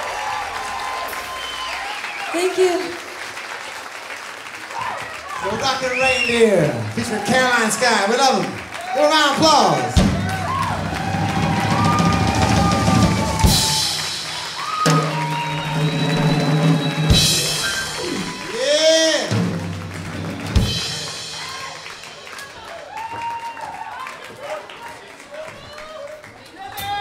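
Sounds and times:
live band playing: 9.4s - 23.0s.

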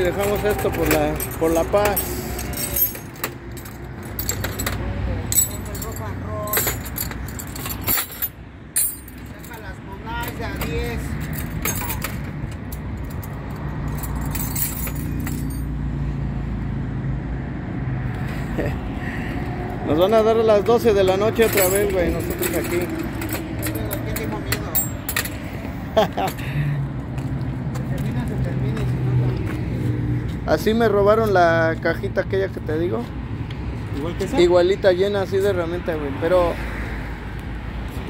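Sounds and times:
small metal pieces clinking: 0.0s - 9.6s, 13.9s - 15.6s.

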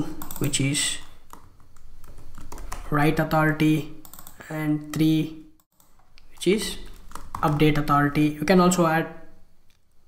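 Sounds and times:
keyboard typing: 0.0s - 3.1s, 3.9s - 8.2s.

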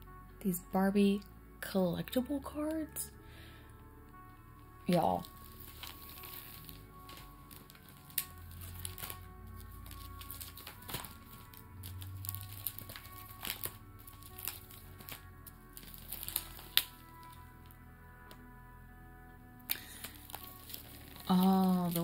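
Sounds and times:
soft background music: 0.0s - 22.0s
plastic binder pages flipping: 4.9s - 18.4s, 19.6s - 22.0s.

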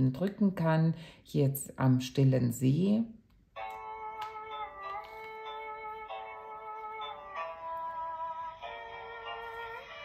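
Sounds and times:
sound book melody: 3.5s - 10.0s.

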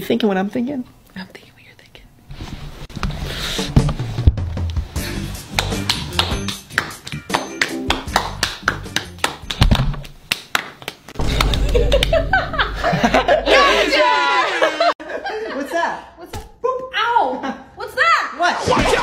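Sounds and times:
music with steady bass line: 4.3s - 7.3s
hands clapping and slapping: 5.5s - 12.1s.

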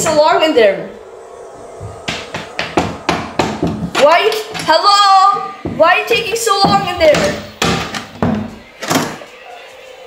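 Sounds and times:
knocking on a door: 6.6s - 8.5s.

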